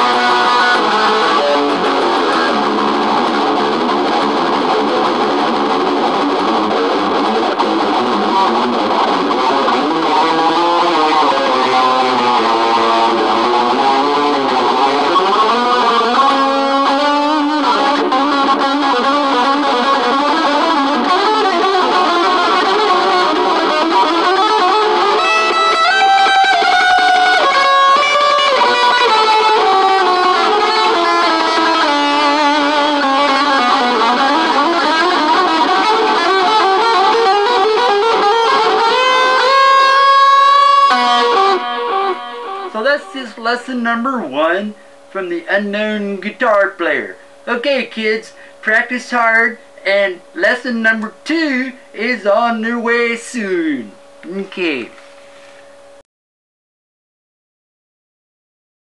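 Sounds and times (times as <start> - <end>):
electric guitar fast runs: 0.0 - 42.8.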